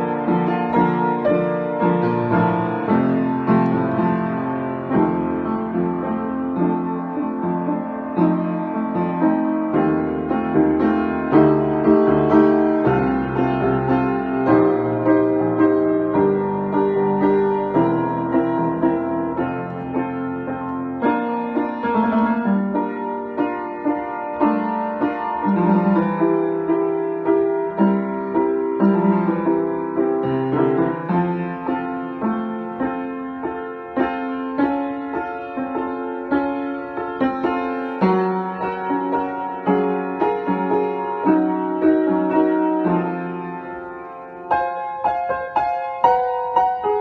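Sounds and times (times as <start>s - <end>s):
upright piano improvisation: 0.0s - 47.0s.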